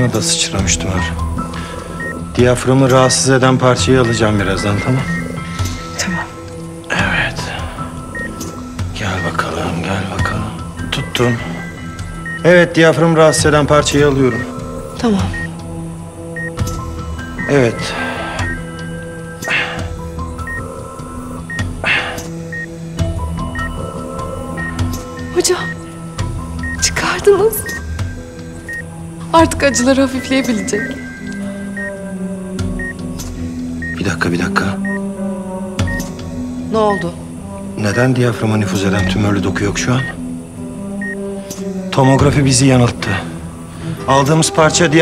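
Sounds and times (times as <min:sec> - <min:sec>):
patient monitor beeping: 0:00.0 - 0:43.2
sustained background score: 0:00.0 - 0:45.0.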